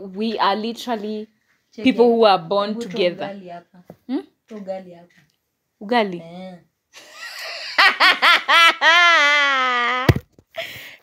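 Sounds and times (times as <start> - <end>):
woman laughing hard: 7.0 - 10.2.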